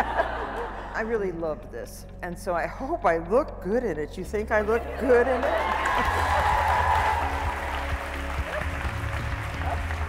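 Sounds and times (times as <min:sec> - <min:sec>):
music with held low tones: 0:00.0 - 0:10.0
audience applauding: 0:05.2 - 0:10.0.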